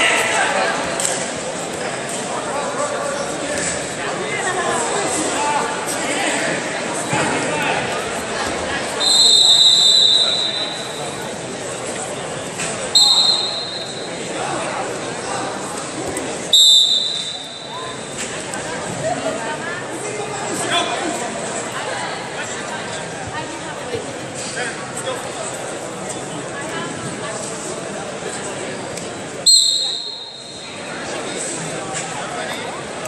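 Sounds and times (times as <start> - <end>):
sports hall chatter: 0.0 - 33.0
referee's whistle blasts: 9.0 - 11.2, 12.9 - 14.2, 16.5 - 18.0, 29.4 - 30.8.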